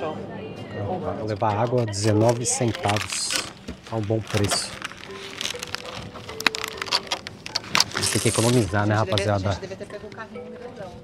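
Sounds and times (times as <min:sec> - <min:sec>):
plastic wrap crackling: 0:01.3 - 0:09.7.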